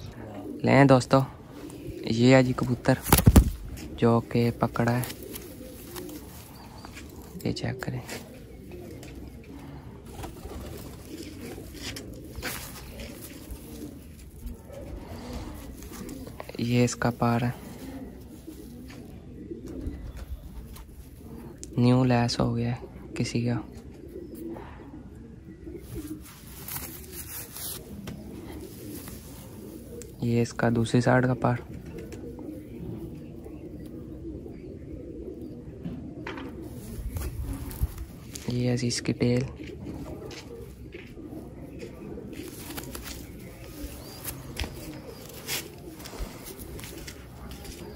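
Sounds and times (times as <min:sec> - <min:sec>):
pigeon cooing: 0:00.0 - 0:47.9.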